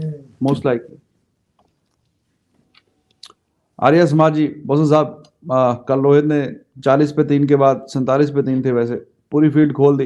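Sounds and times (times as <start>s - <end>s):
man speaking: 0.3s - 1.0s, 3.8s - 10.0s
faint mouth clicks: 2.7s - 3.5s.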